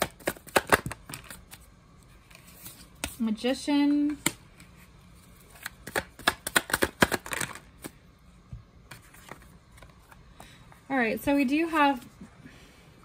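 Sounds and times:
cards being shuffled: 5.4 - 8.0.

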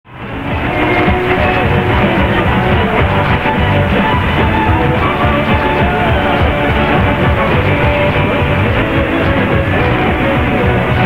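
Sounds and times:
music over am radio: 0.1 - 11.0.

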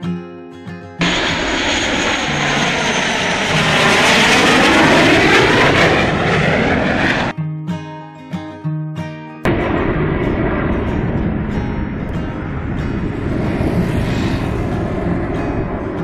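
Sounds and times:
acoustic guitar music: 0.0 - 1.0, 7.3 - 16.0
jet passing overhead: 1.0 - 7.3, 9.5 - 16.0.

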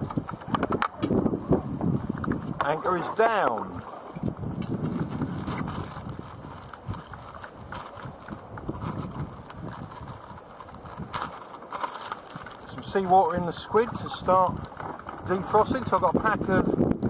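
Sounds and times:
plastic bag crinkling: 4.7 - 13.0.

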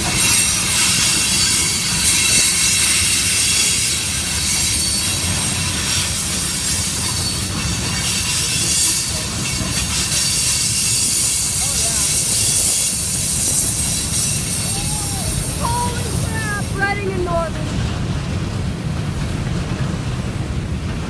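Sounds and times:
freight train rolling past: 0.0 - 21.0
steel wheels on rails: 0.0 - 21.0.

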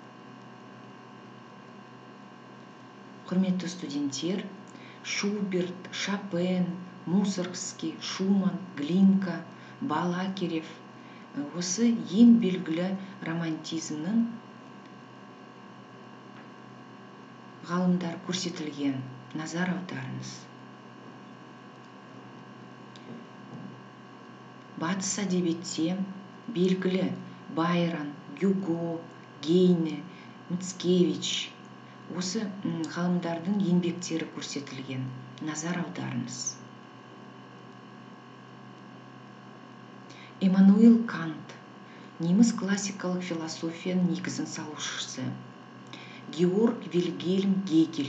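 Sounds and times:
faint background hum and hiss: 0.0 - 48.0.

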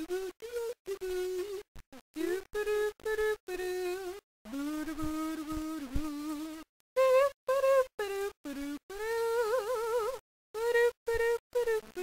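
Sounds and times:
kazoo melody: 3.7 - 12.0.

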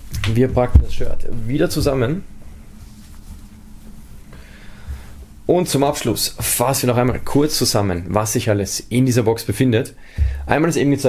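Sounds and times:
steady low hum: 0.0 - 11.0
rustling of shirt being folded: 2.5 - 4.3.

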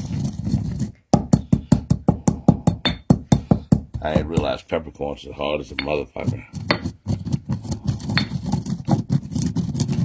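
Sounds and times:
pestle grinding in stone mortar: 0.0 - 4.6, 5.7 - 10.0.

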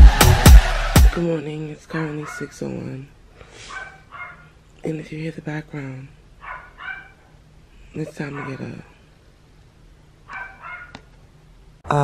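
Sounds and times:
small dog barking: 2.1 - 2.6, 3.6 - 4.6, 6.4 - 7.3, 8.0 - 8.9, 10.3 - 11.0.

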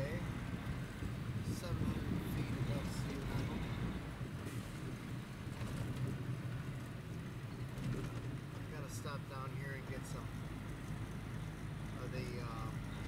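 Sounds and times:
road noise: 0.0 - 13.0
truck engine rumble: 0.0 - 13.0.

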